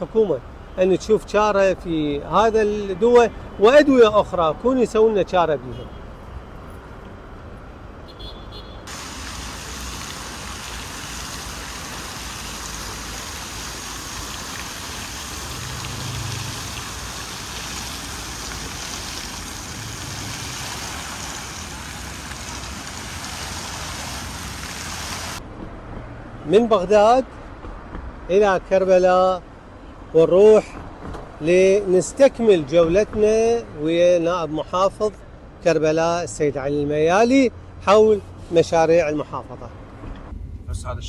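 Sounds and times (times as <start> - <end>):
road traffic passing: 0.0 - 28.4, 36.5 - 41.0
fountain water splashing: 8.9 - 25.4.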